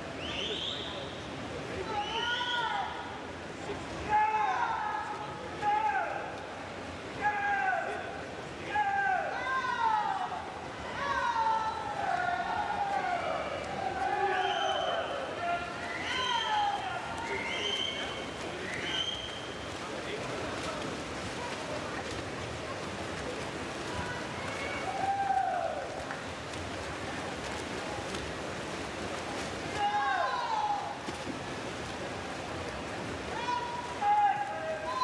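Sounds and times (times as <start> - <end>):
steady background hiss: 0.0 - 35.0
people shouting encouragement: 7.2 - 18.1, 23.9 - 26.0, 29.7 - 31.0, 33.3 - 35.0.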